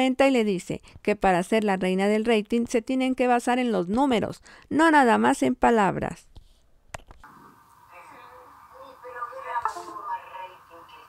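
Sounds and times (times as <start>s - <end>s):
distorted tinny voice: 7.9s - 11.0s.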